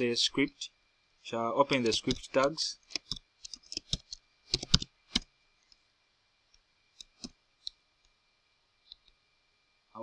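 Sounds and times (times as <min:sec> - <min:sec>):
keyboard keystrokes: 0:02.9 - 0:05.3
mouse clicks: 0:06.5 - 0:07.8.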